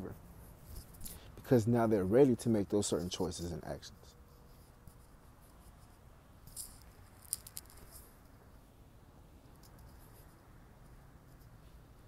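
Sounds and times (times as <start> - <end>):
soft rustle: 0.0 - 1.6, 2.2 - 8.8, 9.4 - 12.0
small clicks: 6.5 - 8.0.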